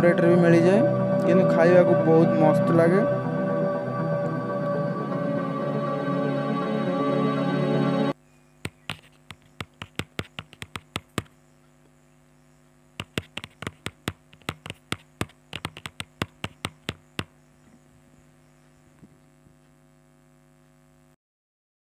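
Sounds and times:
steady low hum: 0.0s - 21.2s
keyboard key clicks: 8.7s - 11.3s, 13.0s - 17.3s.

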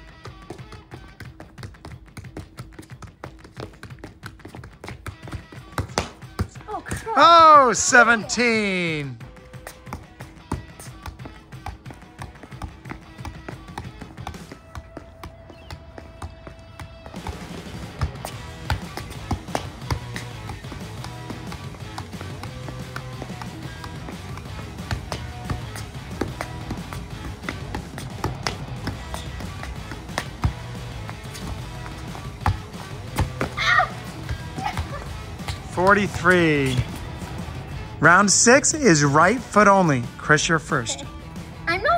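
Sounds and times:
soccer ball taps: 0.0s - 7.2s, 8.5s - 37.4s
background music with beat: 0.0s - 41.9s.

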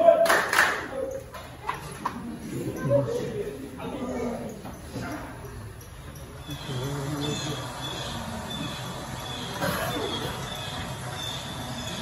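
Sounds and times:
indistinct low voices: 0.0s - 12.0s.

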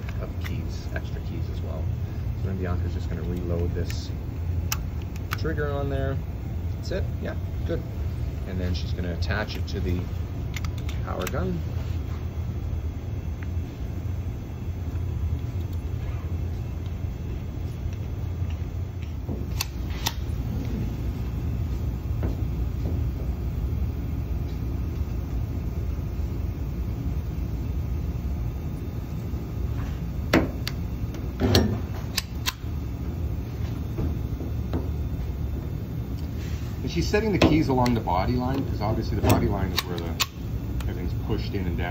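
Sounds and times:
steady low hum: 0.0s - 41.9s
spot welder sharp clicks: 3.3s - 5.9s, 10.4s - 11.6s, 18.9s - 20.4s, 30.3s - 33.0s, 37.4s - 41.0s.

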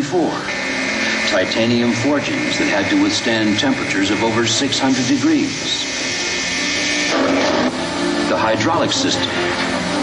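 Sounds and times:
steady rushing noise over loudspeakers: 0.0s - 10.0s.

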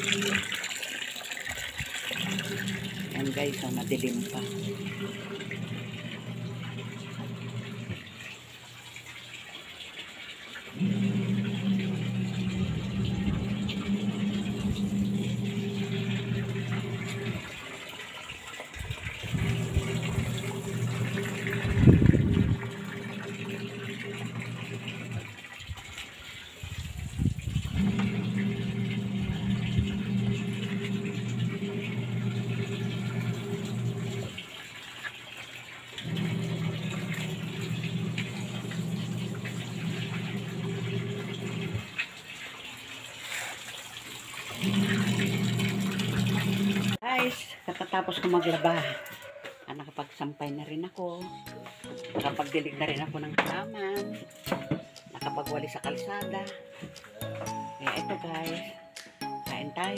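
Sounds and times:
washing machine motor hum: 0.0s - 9.5s, 10.7s - 43.1s, 43.9s - 47.0s.

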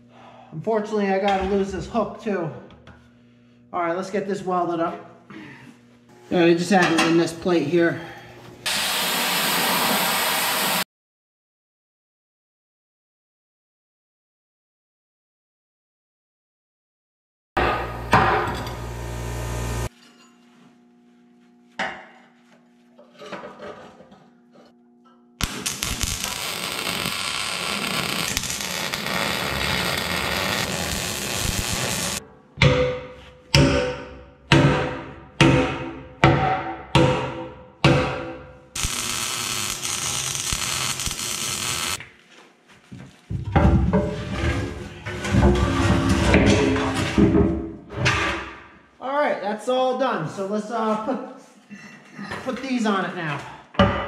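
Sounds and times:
arc welding crackling hiss: 8.6s - 10.8s, 18.7s - 19.9s, 25.4s - 32.2s, 38.8s - 42.0s
sledgehammer striking metal: 32.6s - 38.5s.

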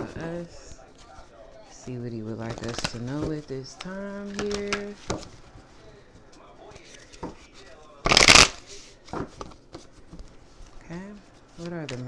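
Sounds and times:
cards being shuffled: 2.3s - 5.5s, 6.7s - 12.0s.

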